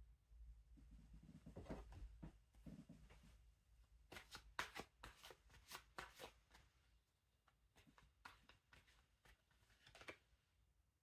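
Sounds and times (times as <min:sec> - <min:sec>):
cards clicking and flicking: 0:04.1 - 0:06.6, 0:07.8 - 0:10.3.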